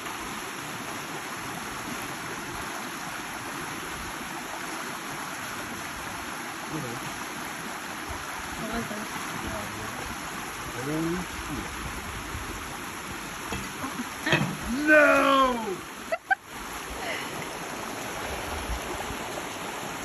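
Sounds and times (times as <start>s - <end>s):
water running over rocks: 0.0s - 20.0s
person speaking: 14.3s - 15.9s.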